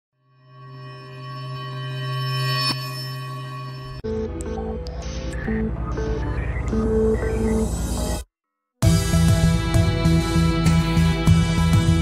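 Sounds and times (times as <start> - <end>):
ringing logo tone: 0.2 - 8.2.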